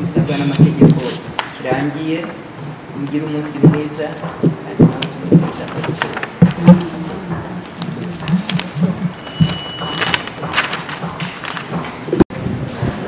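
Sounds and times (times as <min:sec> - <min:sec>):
murmur of voices: 0:00.0 - 0:13.0
paper rustling: 0:00.4 - 0:02.5, 0:03.1 - 0:12.3
sharp clicks and taps: 0:03.1 - 0:12.2.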